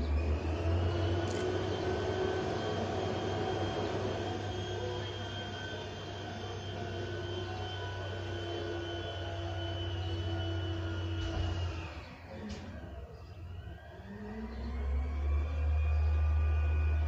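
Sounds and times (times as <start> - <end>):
mechanical drone with low hum: 0.0 - 17.0.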